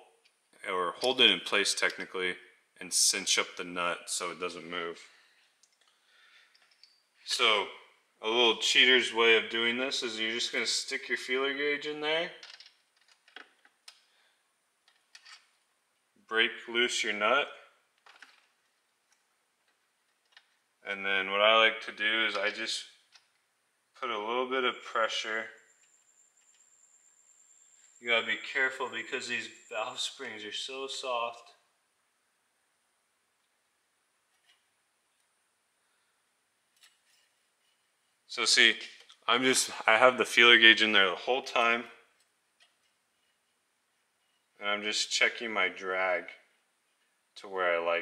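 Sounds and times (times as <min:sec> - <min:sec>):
faint small clicks: 0:05.4 - 0:07.0.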